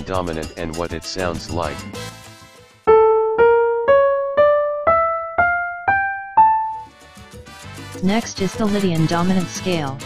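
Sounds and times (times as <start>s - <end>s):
keyboard notes ascending scale: 2.9s - 6.9s.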